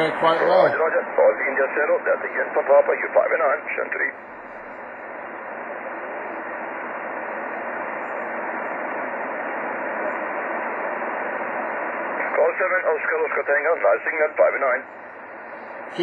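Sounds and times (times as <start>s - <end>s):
shortwave receiver hiss: 0.0s - 16.0s.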